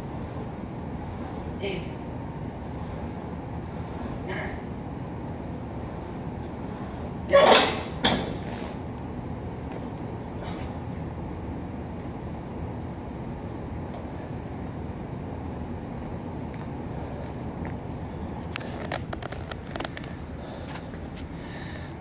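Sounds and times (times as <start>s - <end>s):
low background rumble: 0.0s - 22.0s.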